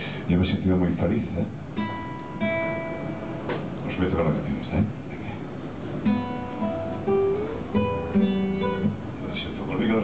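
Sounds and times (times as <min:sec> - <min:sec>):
acoustic guitar chords: 0:01.6 - 0:03.8, 0:05.8 - 0:09.3.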